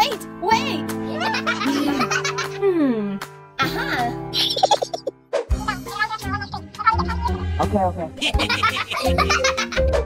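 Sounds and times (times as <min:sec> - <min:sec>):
cheerful background music: 0:00.0 - 0:10.0
high-pitched giggling: 0:03.6 - 0:05.1.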